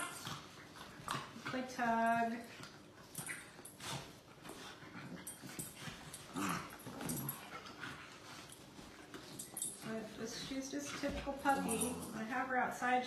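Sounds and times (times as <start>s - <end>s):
puppies scuffling on bed: 0.0s - 12.9s.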